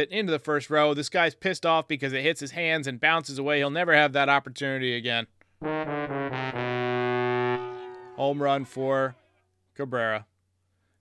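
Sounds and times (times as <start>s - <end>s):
brass fanfare: 5.6s - 8.6s.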